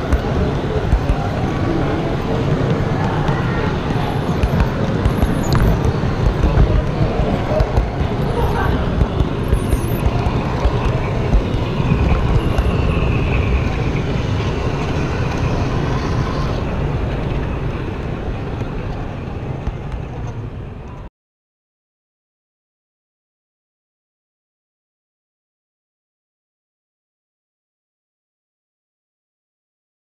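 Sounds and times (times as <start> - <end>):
chatter of visitors: 0.0 - 21.1
model train rumbling on track: 0.0 - 21.1.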